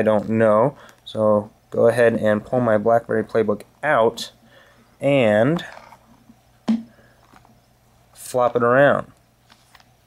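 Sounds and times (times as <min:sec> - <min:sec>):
tablet case handling noise: 0:05.6 - 0:07.6, 0:09.4 - 0:10.0.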